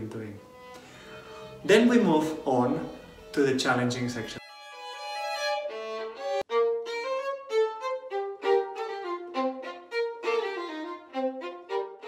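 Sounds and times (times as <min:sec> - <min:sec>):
solo violin run: 0:00.4 - 0:12.0.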